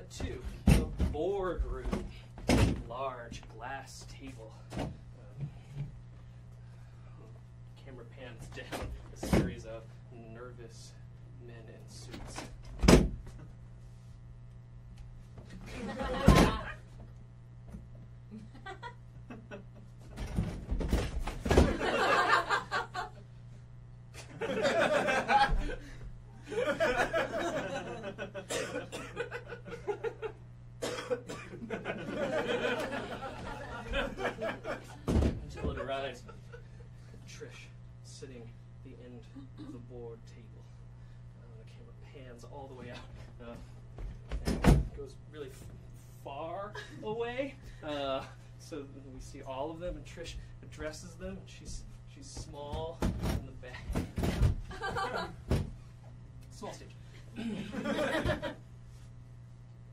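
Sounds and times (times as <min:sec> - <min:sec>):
person coughing: 0:28.5 - 0:29.2, 0:30.8 - 0:31.6.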